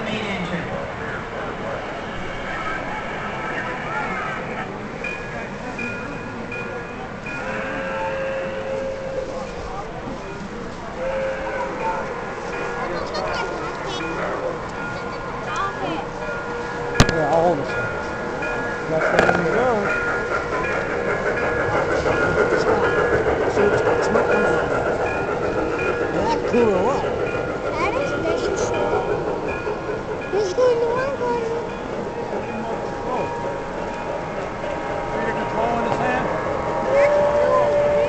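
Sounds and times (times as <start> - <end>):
model train horn: 11.0 - 11.7.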